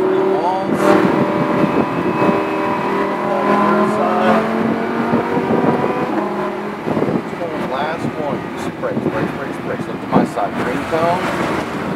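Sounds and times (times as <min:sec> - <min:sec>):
car engine at part throttle: 0:00.0 - 0:11.9
tyre and road noise: 0:00.0 - 0:11.9.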